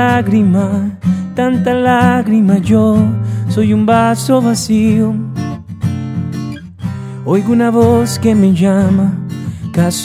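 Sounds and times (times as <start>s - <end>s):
acoustic guitar strumming: 0.0s - 10.0s
person singing: 7.2s - 10.0s.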